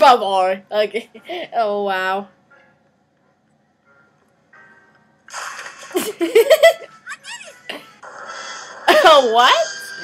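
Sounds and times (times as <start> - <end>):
cartoon music: 5.6 - 8.6
high-pitched cartoon girl voice: 7.0 - 7.6.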